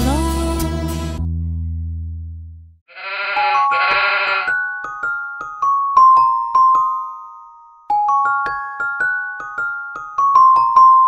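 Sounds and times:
sheep bleating: 0:02.9 - 0:04.6.

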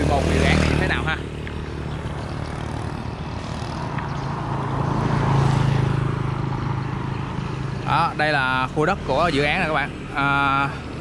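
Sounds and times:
vehicle passing on road: 0:00.0 - 0:11.0.

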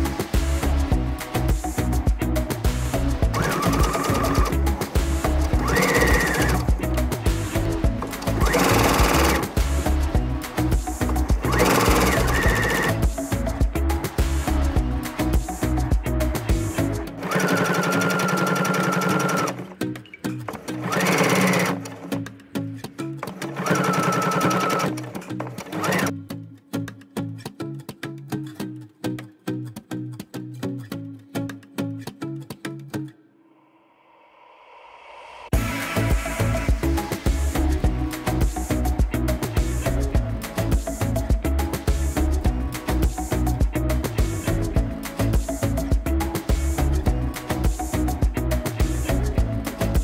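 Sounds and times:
background music with beat: 0:00.0 - 0:33.2, 0:35.5 - 0:50.0
sewing machine stitching: 0:03.3 - 0:04.5, 0:05.6 - 0:06.7, 0:08.1 - 0:09.5, 0:11.4 - 0:13.0, 0:17.2 - 0:19.7, 0:20.5 - 0:22.1, 0:23.2 - 0:26.1.

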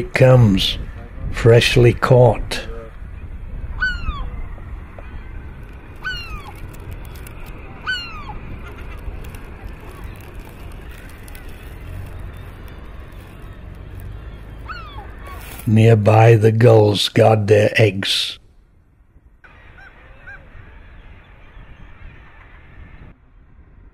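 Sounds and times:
steady low rumble: 0:00.0 - 0:23.9
seabird calls: 0:03.1 - 0:16.7, 0:19.4 - 0:23.1.

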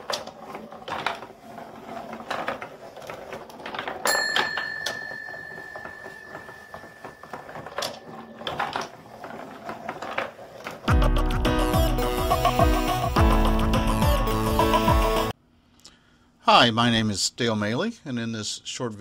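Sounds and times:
bell-like ring: 0:04.1 - 0:08.2.

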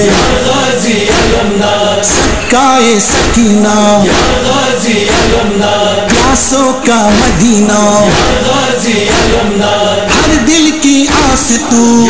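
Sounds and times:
male chorus singing: 0:00.0 - 0:12.0
man reciting a lamentation chant: 0:00.0 - 0:12.0.

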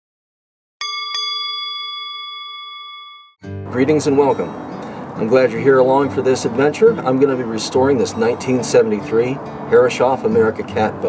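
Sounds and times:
bell ringing: 0:00.8 - 0:03.4.

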